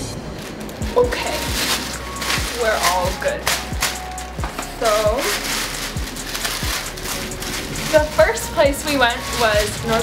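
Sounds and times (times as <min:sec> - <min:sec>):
background music with deep beat: 0:00.0 - 0:10.0
plastic bags rustling: 0:00.0 - 0:10.0.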